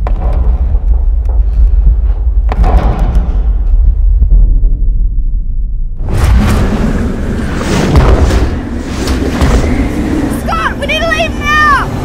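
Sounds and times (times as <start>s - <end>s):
sharp hits: 2.4s - 10.4s.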